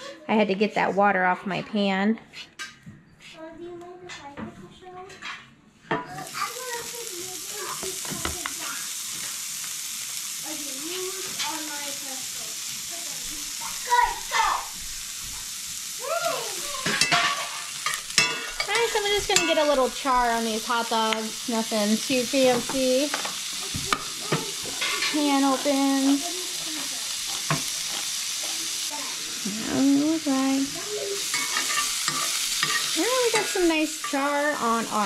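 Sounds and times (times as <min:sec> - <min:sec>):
food sizzling in a skillet: 0:05.9 - 0:35.0
metal utensil scraping a pan: 0:16.8 - 0:20.7, 0:22.4 - 0:28.8, 0:30.8 - 0:35.0.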